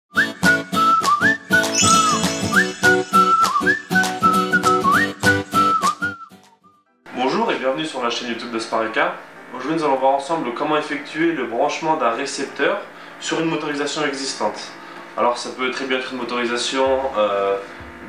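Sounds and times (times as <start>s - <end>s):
whistled jingle over beat: 0.2s - 6.9s.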